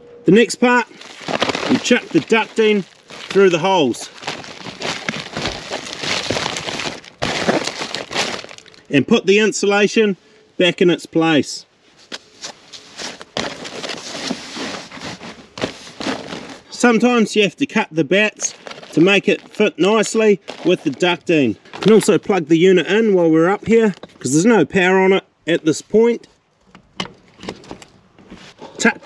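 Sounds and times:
insulation rustling and crackling: 0.6s - 8.9s, 11.8s - 17.2s, 18.1s - 24.3s.

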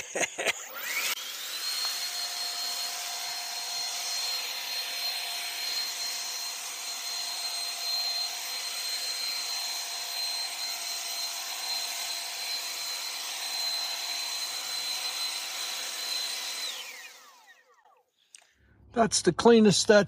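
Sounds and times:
leaf blower whining: 0.0s - 18.0s.

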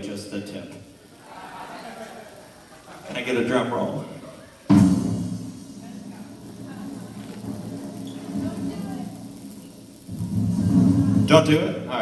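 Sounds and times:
drum roll: 4.6s - 12.0s.

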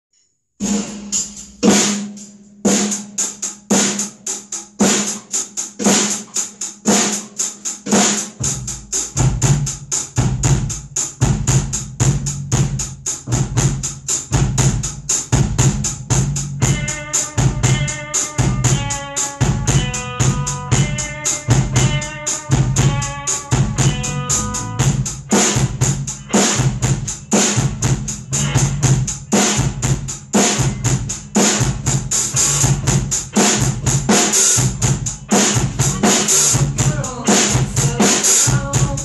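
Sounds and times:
drum kit rock beat: 0.6s - 39.0s
hi-hat strokes: 0.6s - 39.0s
chord of pitched notes: 16.6s - 26.8s
deep sustained bass line: 19.4s - 26.0s, 27.6s - 29.2s.

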